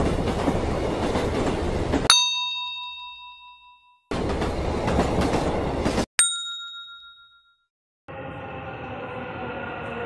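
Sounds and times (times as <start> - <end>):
metro train rumble: 0.0 - 2.1, 4.1 - 6.0, 8.1 - 10.0
bright ringing ding: 2.1 - 4.0, 6.2 - 7.6.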